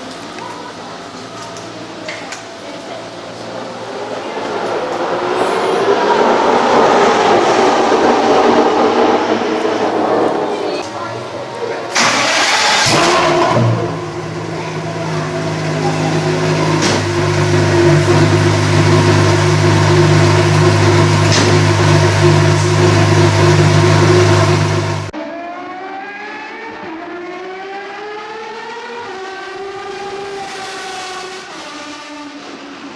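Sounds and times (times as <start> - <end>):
car engine starting and idling: 11.5 - 25.2.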